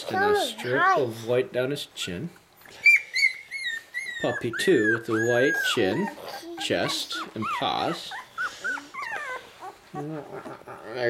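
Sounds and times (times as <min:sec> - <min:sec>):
puppy whimpering: 0:02.0 - 0:11.0.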